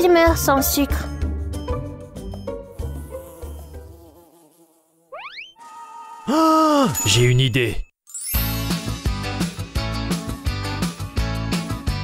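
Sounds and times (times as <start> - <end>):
cartoon bee buzzing: 2.5 - 6.4.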